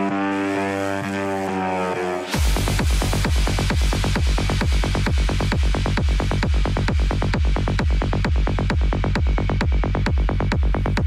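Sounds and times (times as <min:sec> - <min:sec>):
sustained synthesizer chord: 0:00.0 - 0:04.7.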